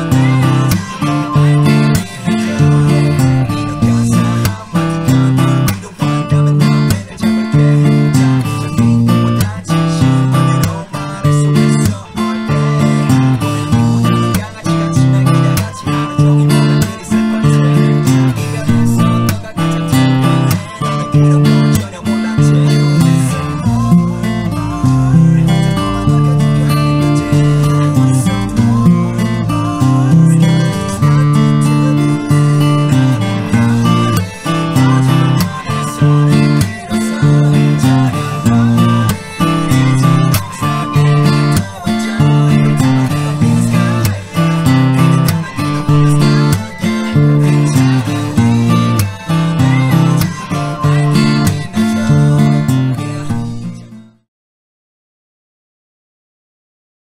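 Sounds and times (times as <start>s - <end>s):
acoustic guitar strumming: 0.0s - 54.3s.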